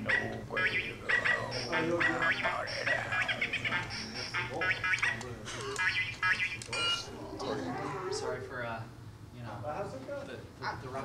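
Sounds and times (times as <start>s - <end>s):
man vocalising in harsh bursts: 0.0s - 7.9s
low electrical hum: 0.0s - 11.0s.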